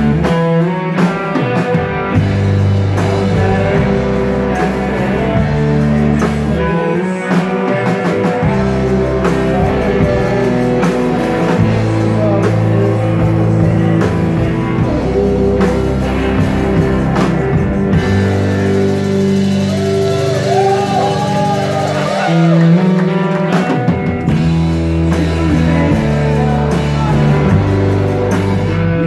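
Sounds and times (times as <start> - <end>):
drums: 0.0 - 29.0
electric guitars: 0.0 - 29.0
live rock band playing: 0.0 - 29.0.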